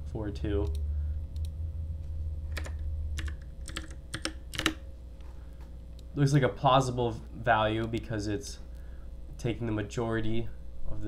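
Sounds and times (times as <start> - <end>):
low steady hum: 0.0 - 11.0
keyboard keystrokes: 2.5 - 4.8.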